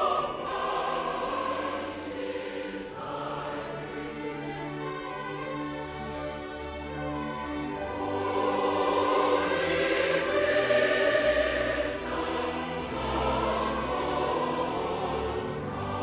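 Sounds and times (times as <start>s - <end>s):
choir singing held notes: 0.0s - 5.7s, 7.2s - 16.0s
orchestral strings: 0.0s - 16.0s.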